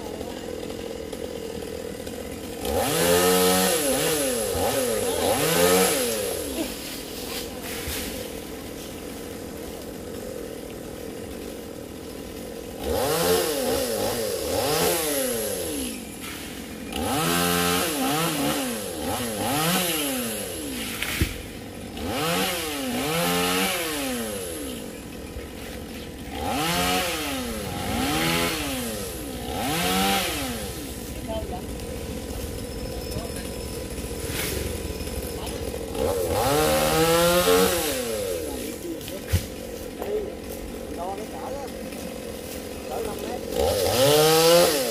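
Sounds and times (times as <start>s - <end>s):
chainsaw idling and revving: 0.0s - 44.9s.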